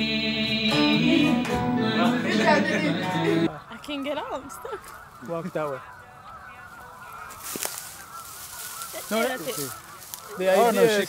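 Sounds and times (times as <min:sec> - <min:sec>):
goose-like honking bird calls: 0:03.4 - 0:11.0.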